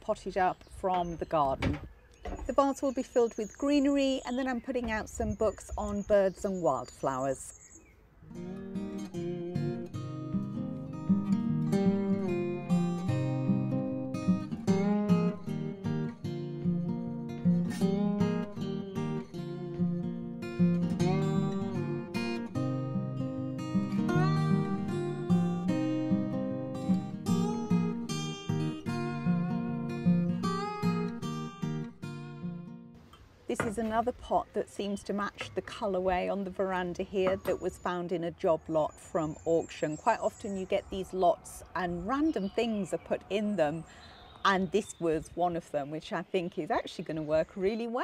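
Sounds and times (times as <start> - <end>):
acoustic guitar plucking and strumming: 8.2 - 34.1.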